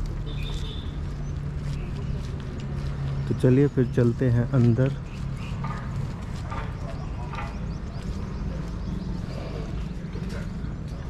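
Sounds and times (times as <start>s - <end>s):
soft footsteps on paving: 0.0s - 11.0s
faint voices: 1.6s - 11.0s.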